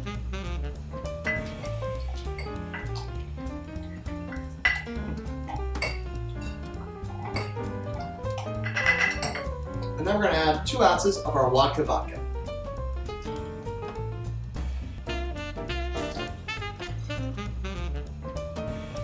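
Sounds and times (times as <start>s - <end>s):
background music with bass line: 0.0s - 19.0s
muddler clinking against glass: 4.4s - 4.9s, 7.3s - 7.6s, 8.4s - 9.6s.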